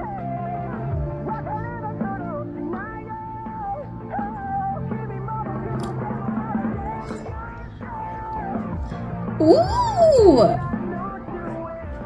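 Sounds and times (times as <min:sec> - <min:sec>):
man singing long notes: 0:09.4 - 0:10.7.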